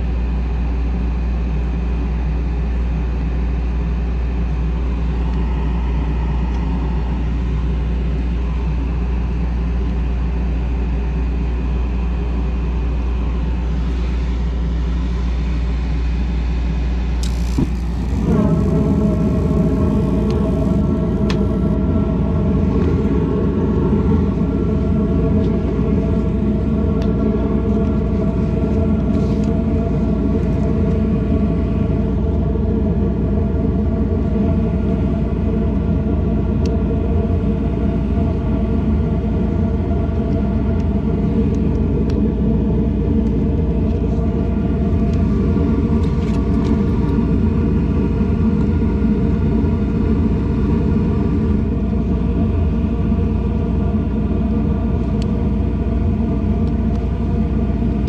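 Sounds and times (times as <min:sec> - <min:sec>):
motor humming and whining: 0:00.0 - 0:58.0.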